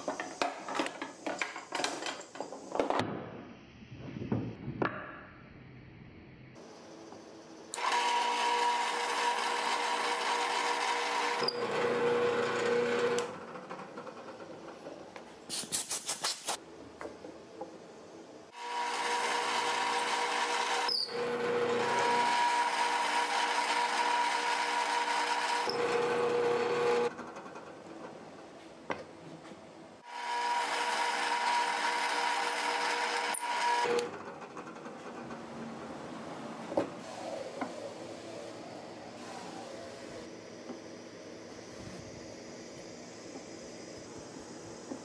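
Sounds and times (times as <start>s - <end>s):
drill press whining: 7.7s - 15.0s, 18.5s - 27.9s, 30.0s - 35.4s
drill chuck spinning down: 7.8s - 13.3s.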